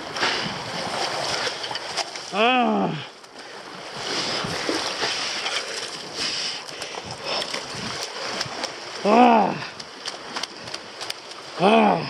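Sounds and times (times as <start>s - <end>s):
sea water splashing over rocks: 0.0s - 12.0s.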